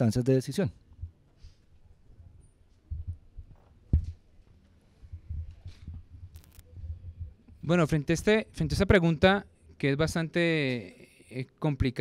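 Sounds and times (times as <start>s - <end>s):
faint low hum: 0.7s - 11.5s
microphone handling thumps: 2.9s - 4.4s, 5.0s - 7.4s.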